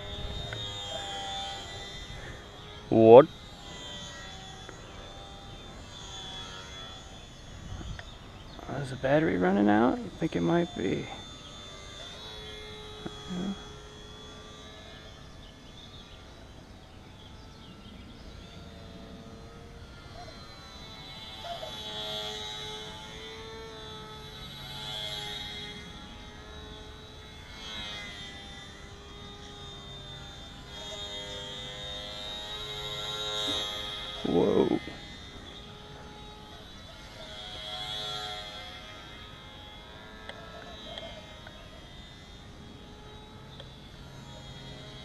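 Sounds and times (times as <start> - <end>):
model plane motor whining: 0.0 - 45.0.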